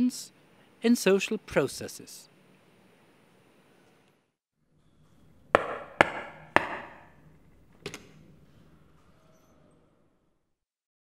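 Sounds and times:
sharp ringing knocks: 0:05.6 - 0:07.2.

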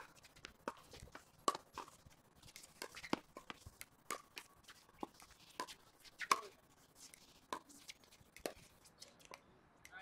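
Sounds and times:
paddles hitting plastic ball: 0:02.5 - 0:10.0.

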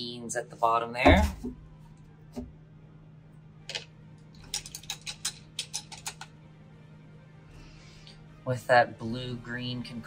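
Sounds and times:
steady low hum: 0:00.0 - 0:04.5.

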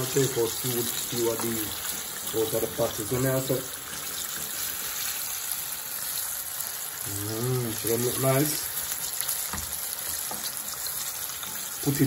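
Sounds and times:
chicken frying in hot oil: 0:00.0 - 0:12.0.

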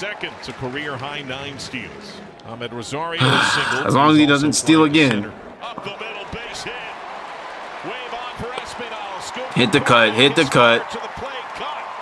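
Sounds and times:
stadium crowd murmur: 0:00.0 - 0:12.0
faint announcer's voice: 0:07.9 - 0:12.0.

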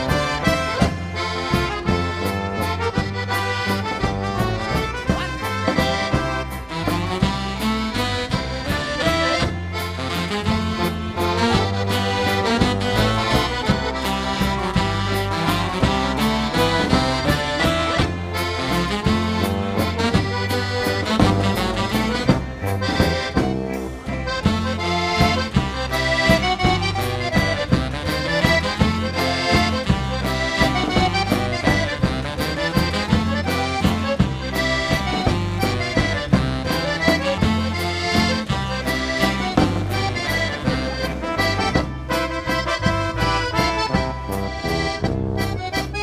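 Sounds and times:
accordion-led polka band: 0:00.0 - 0:46.0.

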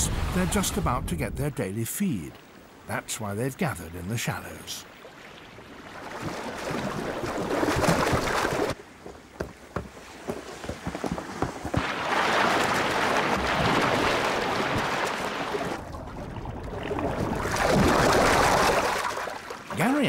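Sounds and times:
shallow water splashing and churning: 0:04.8 - 0:20.0.

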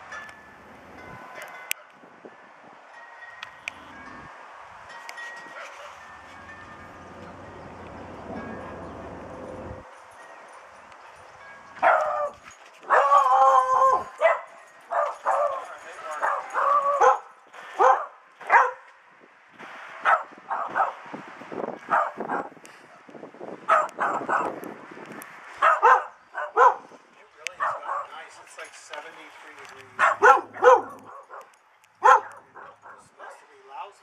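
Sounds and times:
dog barking: 0:11.8 - 0:13.3, 0:13.9 - 0:15.6, 0:16.2 - 0:18.9, 0:20.0 - 0:21.0, 0:21.9 - 0:23.0, 0:23.7 - 0:24.6, 0:25.6 - 0:26.9, 0:27.6 - 0:28.2, 0:30.0 - 0:33.5.

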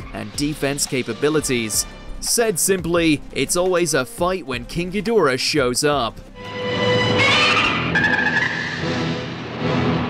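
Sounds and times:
background music: 0:00.0 - 0:10.0
monster screech: 0:06.8 - 0:09.3.

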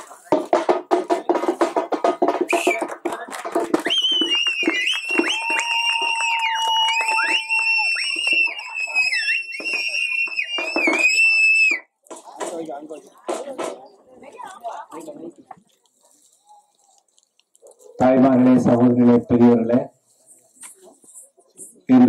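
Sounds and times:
shrill whistling: 0:02.5 - 0:02.8, 0:03.8 - 0:11.9
crowd shouting: 0:04.2 - 0:11.8.

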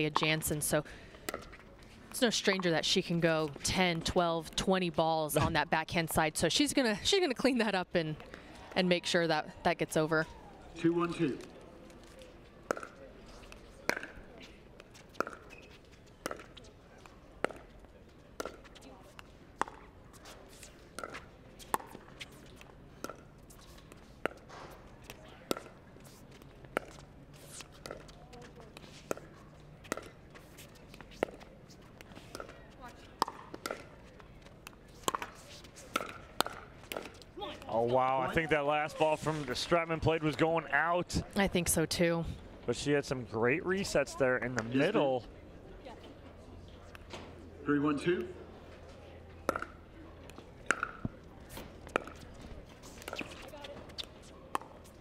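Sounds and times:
paddles hitting plastic ball: 0:12.6 - 0:14.2, 0:26.4 - 0:37.7, 0:49.5 - 0:49.7, 0:50.3 - 0:52.3.

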